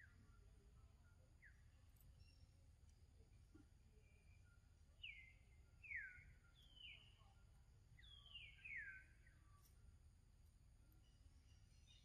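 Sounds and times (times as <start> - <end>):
faint bird whistles: 4.0 - 7.4, 8.0 - 9.4.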